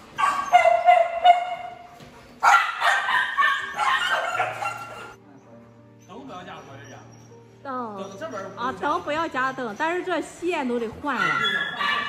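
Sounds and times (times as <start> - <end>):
dogs barking and howling: 0.0 - 5.2, 11.1 - 12.0.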